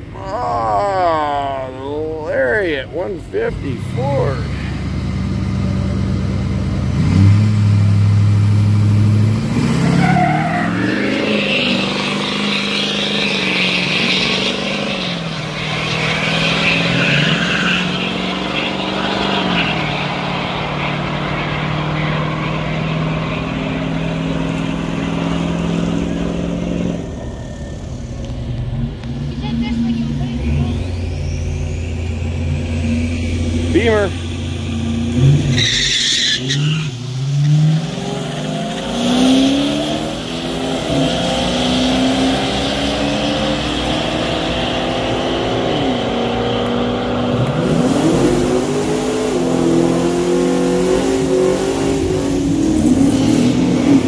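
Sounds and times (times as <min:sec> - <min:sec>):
car idling: 0:00.0 - 0:09.5, 0:11.5 - 0:37.4
pickup truck engines accelerating: 0:00.0 - 0:54.0.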